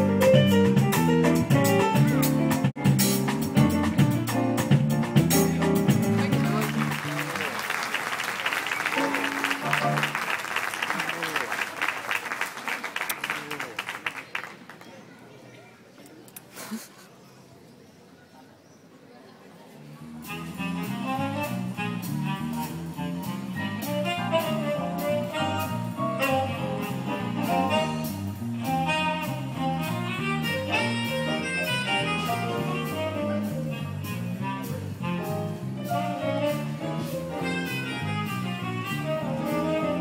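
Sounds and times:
jazz music with walking bass: 0:00.0 - 0:07.2, 0:08.8 - 0:10.4, 0:19.9 - 0:40.0.

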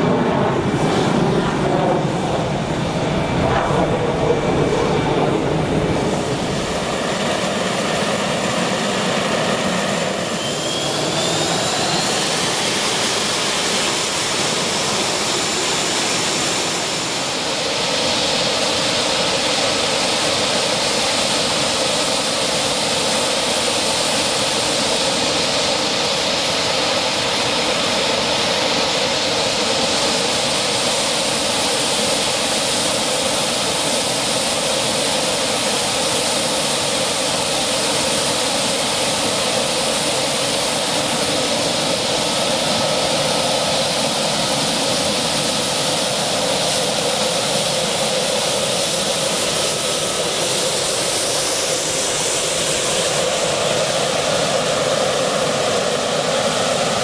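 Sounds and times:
rising engine whine: 0:00.0 - 0:19.0
jet engines roaring: 0:00.0 - 0:57.0.

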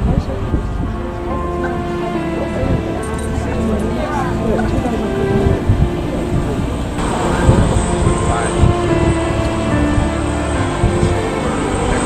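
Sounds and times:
jet engines at takeoff power: 0:04.6 - 0:12.0.

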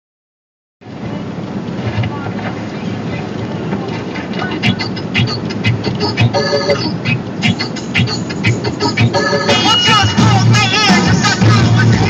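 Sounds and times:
car cabin road noise: 0:00.8 - 0:12.0.

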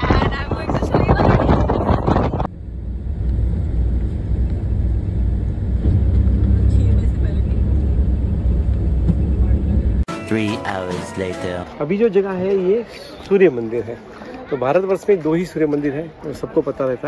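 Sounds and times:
wind buffeting microphone: 0:00.0 - 0:02.6
vehicle driving rumble: 0:00.0 - 0:10.1.

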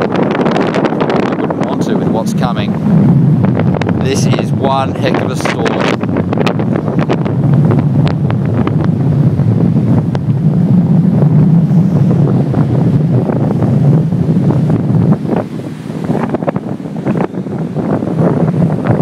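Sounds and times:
surf breaking on shore: 0:00.0 - 0:19.0
wind buffeting microphone: 0:00.0 - 0:19.0.

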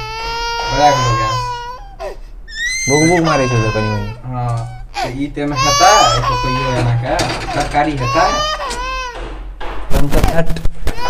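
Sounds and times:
high-pitched crying wail: 0:00.0 - 0:09.3.

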